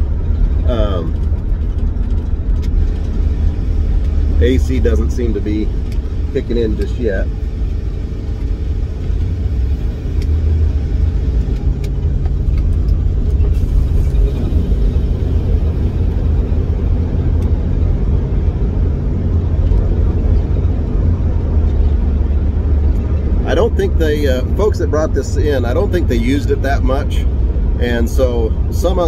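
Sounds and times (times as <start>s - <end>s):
van engine running low rumble: 0.0s - 29.0s.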